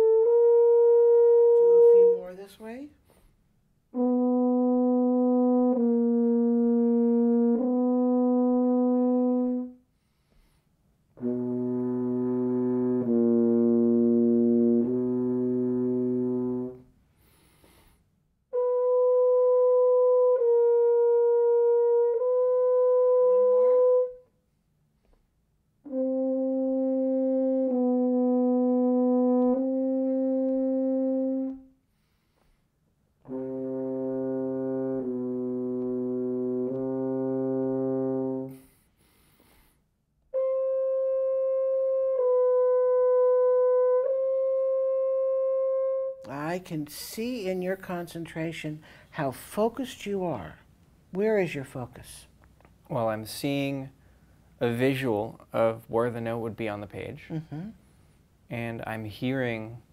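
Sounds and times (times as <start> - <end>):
french horn sustained notes: 0.0 - 2.7, 3.9 - 9.8, 11.2 - 16.9, 18.5 - 24.3, 25.8 - 31.7, 33.2 - 38.8, 40.3 - 46.6.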